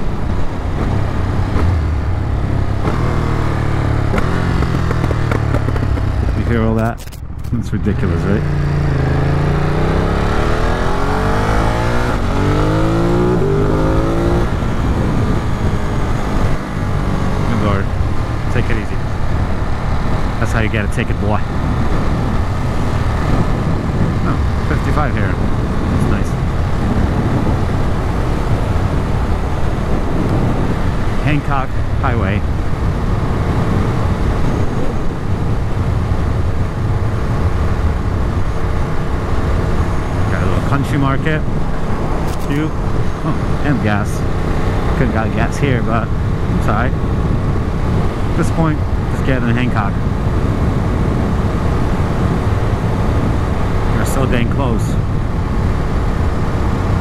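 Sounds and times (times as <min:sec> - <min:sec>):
motorcycle engine accelerating: 0:00.0 - 0:57.0
wind rush on microphone: 0:00.0 - 0:57.0
wind rushing over helmet: 0:11.4 - 0:18.5, 0:21.4 - 0:40.2.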